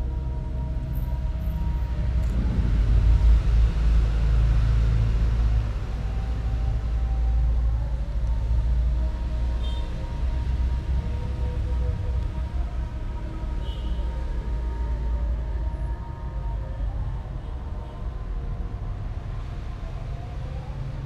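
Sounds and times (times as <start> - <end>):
steady low rumble: 0.0 - 9.4.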